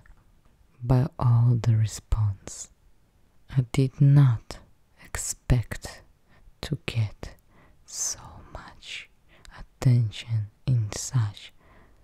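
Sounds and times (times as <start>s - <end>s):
woman whispering softly: 3.5s - 11.6s.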